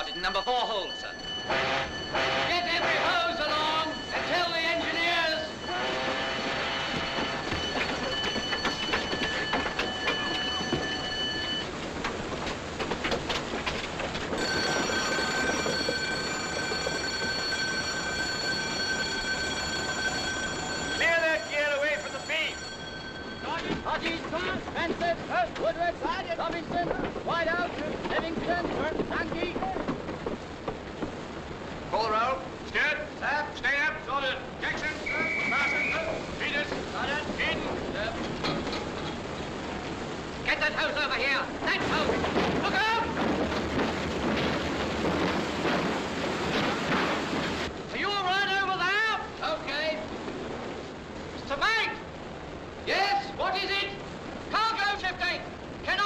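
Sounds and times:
ship alarm shrill tone: 0.0 - 11.8, 14.3 - 24.7, 34.8 - 36.7
continuous rushing noise: 0.0 - 56.0.

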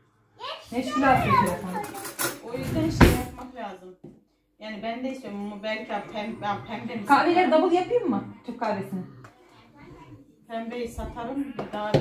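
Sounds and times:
children talking and playing: 0.0 - 3.5, 5.3 - 12.0.

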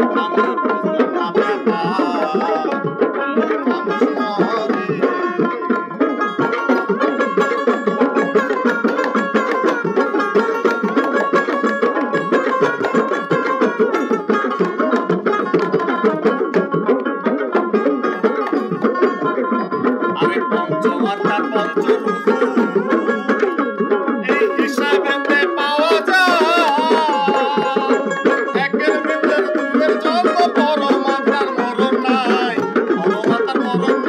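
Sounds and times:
fast hand-drum rhythm: 0.0 - 34.0
plucked dotara: 0.0 - 34.0.

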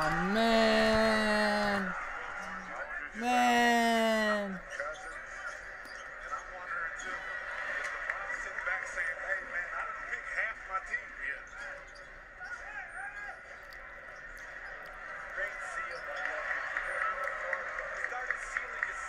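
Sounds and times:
commentators talking: 0.0 - 4.6.

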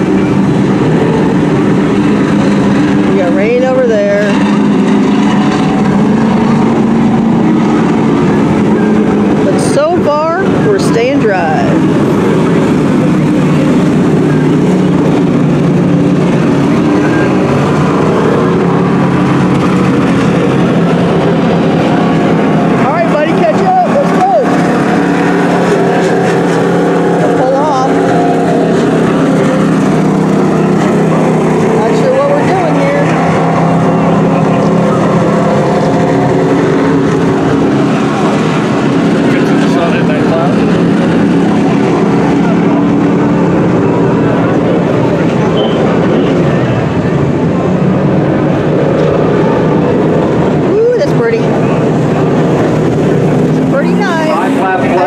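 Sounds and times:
racing truck engines revving: 0.0 - 55.0.

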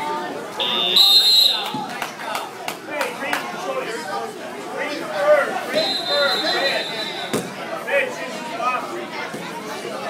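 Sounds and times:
shouting and chatter: 0.0 - 10.0.

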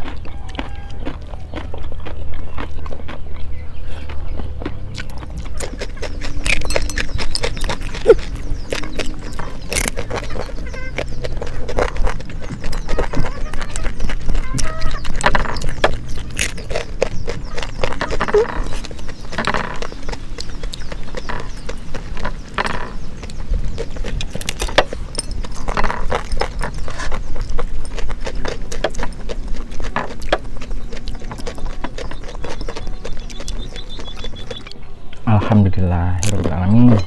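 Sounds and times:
chewing and lip-smacking: 0.0 - 35.2.

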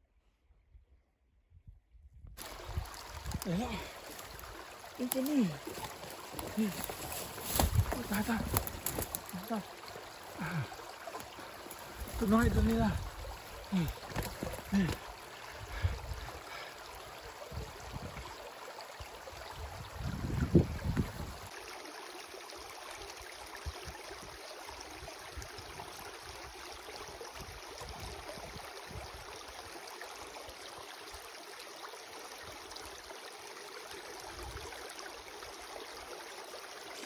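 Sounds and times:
brook running over sticks: 2.4 - 21.6.

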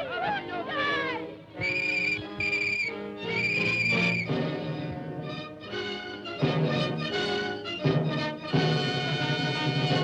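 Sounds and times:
orchestral film music: 0.0 - 10.0
police whistle blasts: 1.6 - 4.3.

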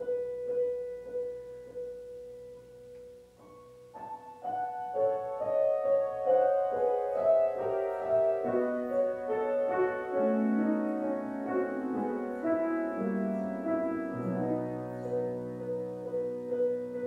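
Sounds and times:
slow quiet piano: 0.0 - 17.0.

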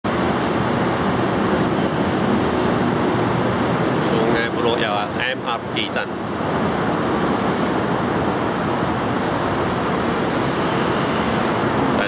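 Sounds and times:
loud traffic rumble: 0.0 - 12.0.

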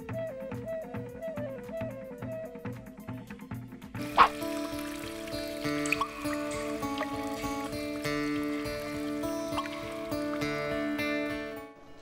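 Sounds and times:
instrumental theme music: 0.0 - 12.0.

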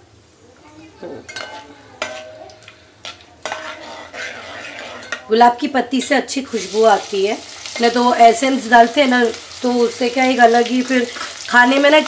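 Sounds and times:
spices sizzling in hot oil: 1.0 - 12.0
spatula knocking metal pot: 1.3 - 2.4.

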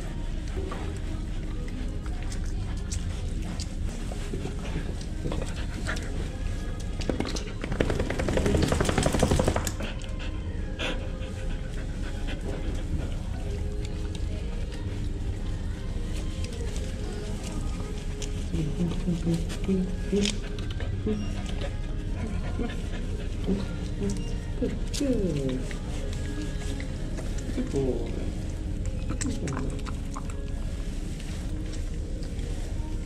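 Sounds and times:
dog panting: 0.2 - 15.2, 15.8 - 31.8.

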